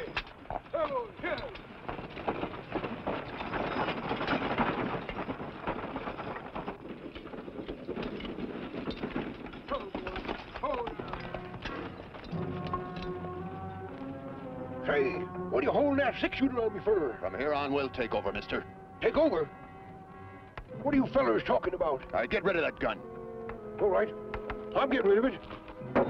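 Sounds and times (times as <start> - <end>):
galloping horse hoofbeats: 0.0 - 26.0
wagon rattling on dirt trail: 0.0 - 26.0
sustained music chord: 12.3 - 24.4.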